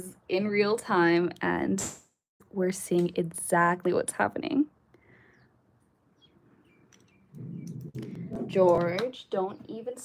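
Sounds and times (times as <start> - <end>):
dog grumbling: 7.4 - 8.6
dog whining: 7.4 - 8.6.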